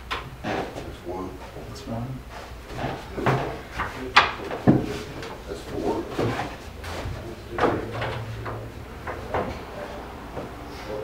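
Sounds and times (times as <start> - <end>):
wooden knocks and clacks: 2.7 - 10.6.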